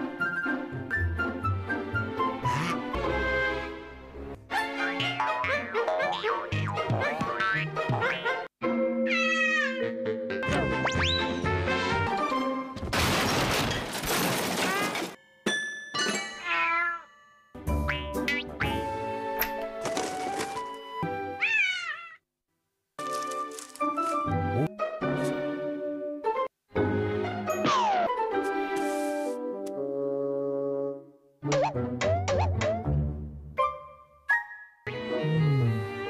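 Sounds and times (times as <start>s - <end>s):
cartoon music with sound effects: 0.1s - 12.7s, 16.4s - 19.4s, 24.2s - 36.0s
cat meowing: 9.1s - 9.8s, 21.4s - 22.2s.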